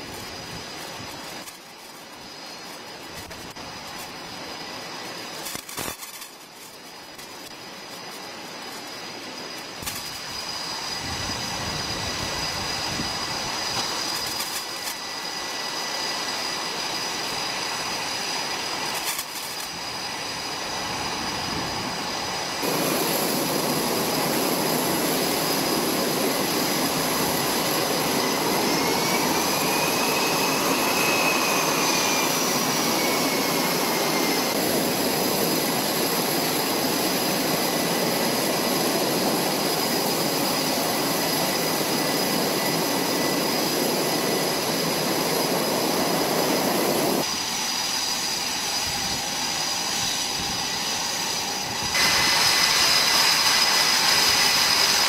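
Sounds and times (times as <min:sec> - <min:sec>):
jet engines running: 0:00.0 - 0:55.0
pitched whine: 0:00.0 - 0:55.0.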